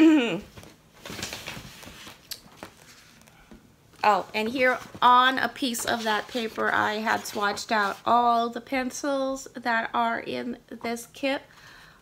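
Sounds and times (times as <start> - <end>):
paper rustling: 0.5 - 3.4, 4.0 - 8.3.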